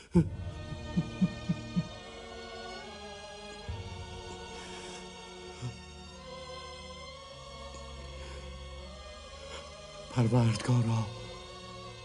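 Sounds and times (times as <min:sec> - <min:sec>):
held chord of sustained tones: 0:00.3 - 0:12.0.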